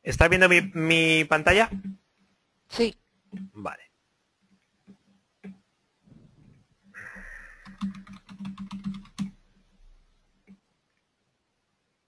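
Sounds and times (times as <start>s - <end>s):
computer keyboard typing: 1.6s - 2.0s, 7.4s - 9.4s.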